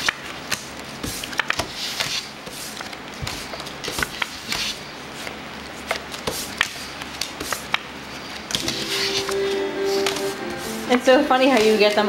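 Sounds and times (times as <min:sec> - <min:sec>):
playing cards slapping on wood: 0:00.0 - 0:08.8
held musical tone: 0:08.6 - 0:12.0.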